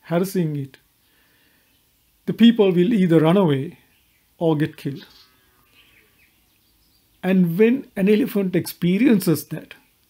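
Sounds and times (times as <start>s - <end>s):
faint high chirps: 3.7s - 7.9s.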